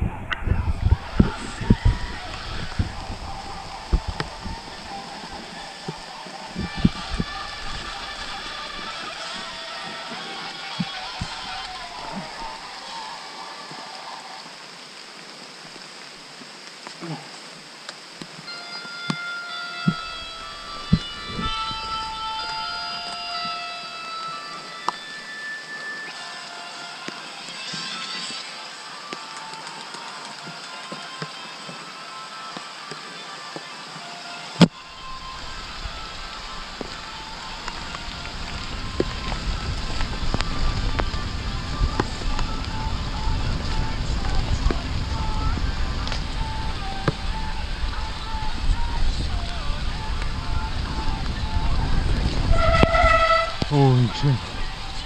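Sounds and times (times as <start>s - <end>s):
wind rumble on microphone: 0.0s - 9.5s, 19.9s - 22.8s, 34.8s - 55.0s
held musical notes: 18.5s - 55.0s.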